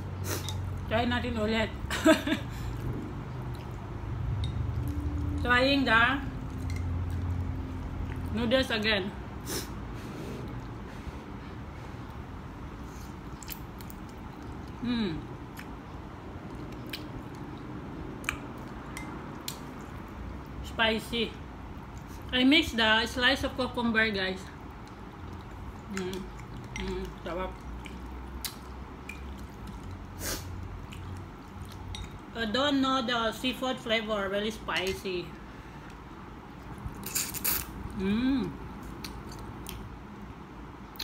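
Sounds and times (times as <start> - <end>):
steady low background noise: 0.0 - 41.0
wet mouth clicks: 13.4 - 14.8, 16.4 - 19.9, 27.6 - 30.0, 37.0 - 38.0, 38.8 - 39.9
person slurping and chewing noodles: 36.6 - 37.8.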